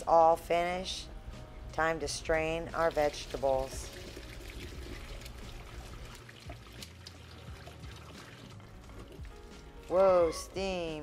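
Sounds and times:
water pouring into colander: 2.8s - 10.0s.

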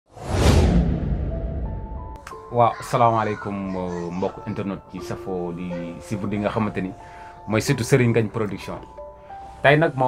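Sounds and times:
whoosh with deep rumble: 0.1s - 2.1s.

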